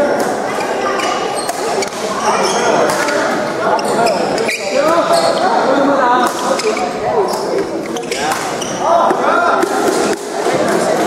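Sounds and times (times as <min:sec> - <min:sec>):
people talking: 0:00.0 - 0:11.0
rackets hitting shuttlecock: 0:01.4 - 0:02.1, 0:02.8 - 0:03.4, 0:06.2 - 0:10.8.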